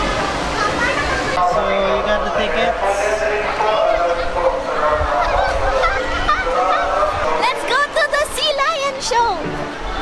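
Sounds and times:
crowd hubbub: 0.0s - 10.0s.

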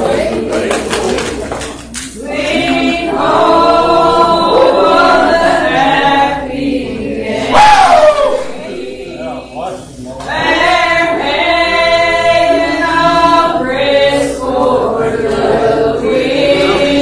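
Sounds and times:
congregation singing: 0.0s - 17.0s
louder nearby voice singing: 0.0s - 17.0s.

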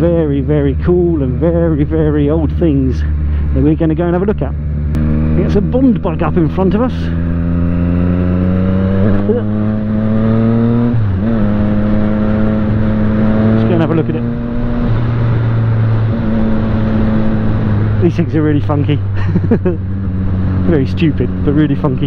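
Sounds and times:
motorcycle engine running: 0.0s - 22.0s
wind noise on microphone: 7.2s - 18.0s.

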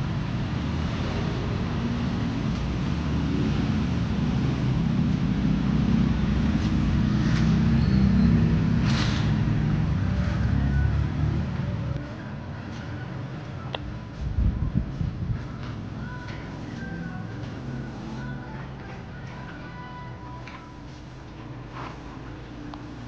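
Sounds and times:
low rumble of street traffic: 0.0s - 23.0s.

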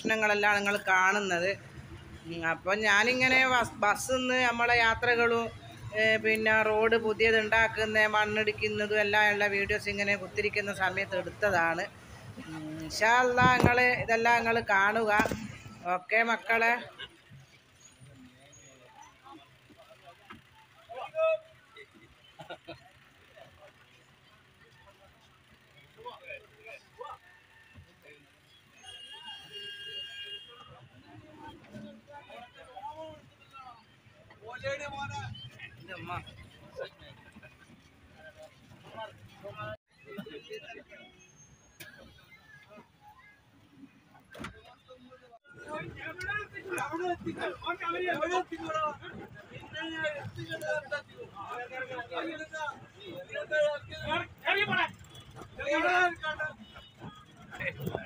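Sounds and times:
bus rumbling: 0.0s - 27.2s
indistinct passenger voices: 0.0s - 58.0s.

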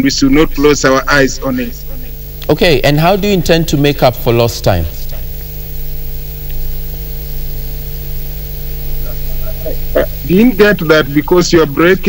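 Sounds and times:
electrical hum with hiss: 0.0s - 12.0s.

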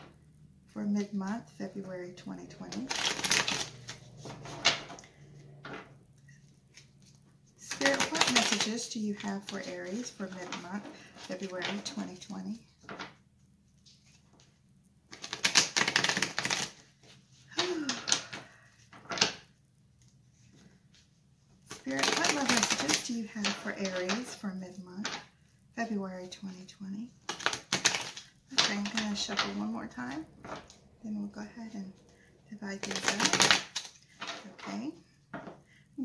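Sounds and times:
cards being shuffled: 2.6s - 4.9s, 6.4s - 21.1s, 21.7s - 24.4s, 27.2s - 29.8s, 32.7s - 35.6s.

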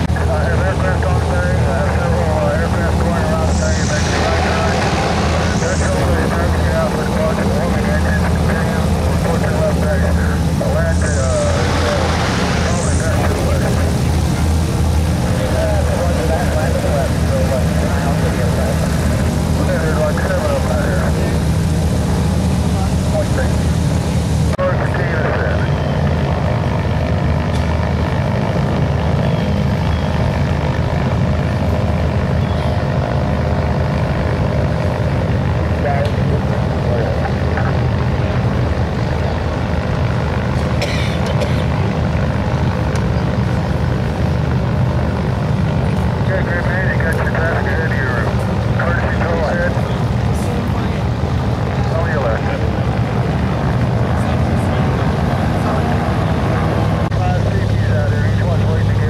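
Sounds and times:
faint voices: 0.0s - 59.0s
propeller plane engine droning: 0.0s - 59.0s.

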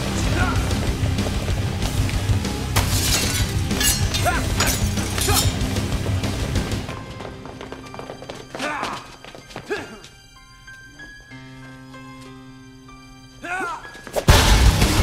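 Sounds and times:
action film score with low beat: 0.0s - 2.8s, 14.2s - 15.0s.

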